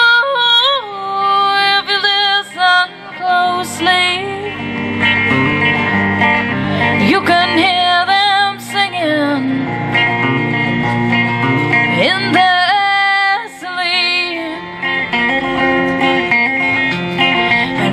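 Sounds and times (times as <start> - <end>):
woman singing: 0.0 - 4.7, 6.7 - 10.0, 11.9 - 14.8, 17.3 - 17.9
electric guitar: 0.0 - 17.9.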